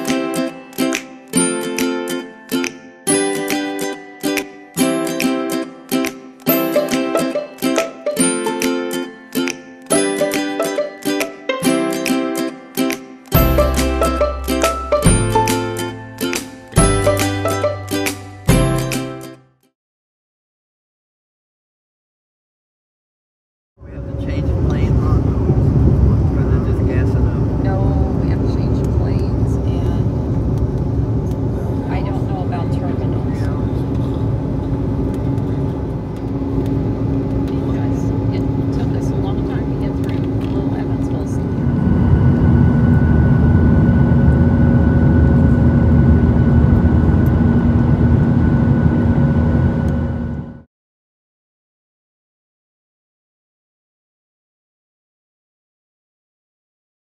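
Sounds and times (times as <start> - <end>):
higher tone: 13.4 - 18.8, 31.4 - 50.6
airliner engine rumble: 23.8 - 50.7.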